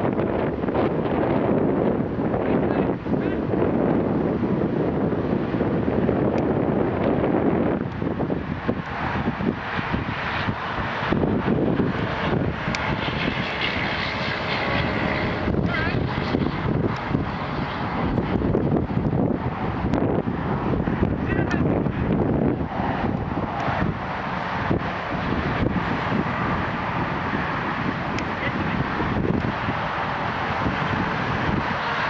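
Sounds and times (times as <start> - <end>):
road traffic rumble: 0.0 - 32.0
wind buffeting microphone: 0.0 - 32.0
semi-truck passing: 5.2 - 32.0.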